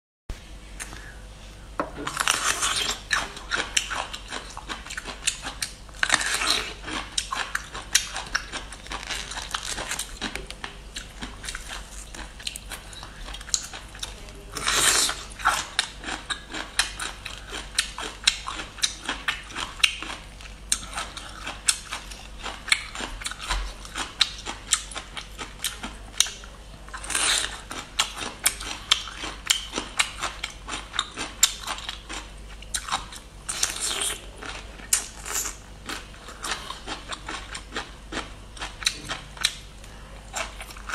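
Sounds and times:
crunchy chewing of bamboo: 2.0s - 40.9s.

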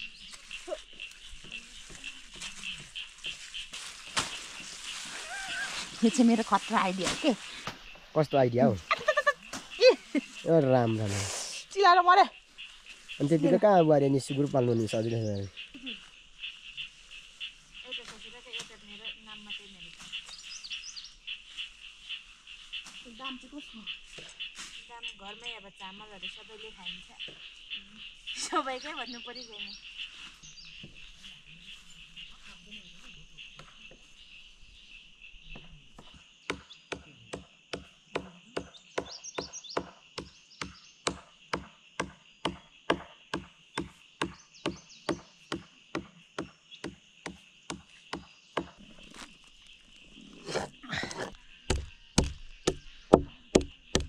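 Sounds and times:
high-pitched insect chorus: 0.0s - 54.0s.

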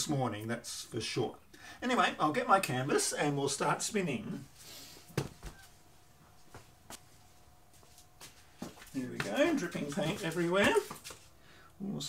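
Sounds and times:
faint steady hum: 0.0s - 12.0s
footsteps: 5.0s - 11.4s.

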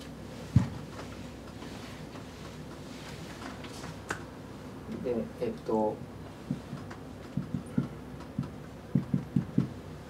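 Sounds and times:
marker knocking on whiteboard: 0.6s - 0.8s, 6.4s - 9.8s.

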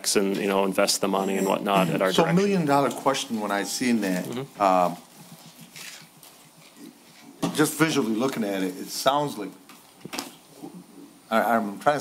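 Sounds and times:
faint small noises: 0.0s - 12.0s.

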